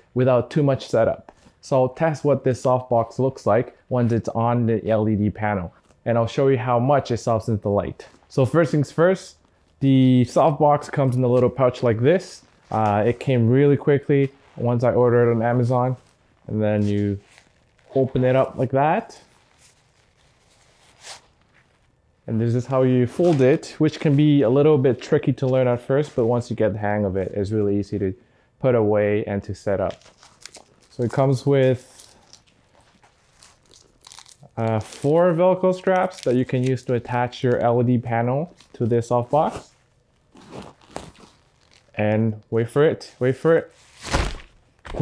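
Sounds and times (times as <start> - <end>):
fabric rustling and crinkling: 10.4 - 26.5, 29.8 - 37.8, 38.5 - 42.0, 43.7 - 45.0
sharp crackle: 15.9 - 22.2, 29.9 - 37.1, 39.6 - 42.0
fabric swish: 43.8 - 44.5.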